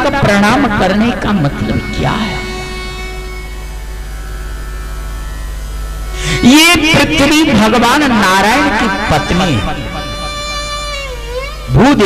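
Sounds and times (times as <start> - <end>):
faint steady tones: 0.0 - 12.0
low electrical hum: 0.0 - 12.0.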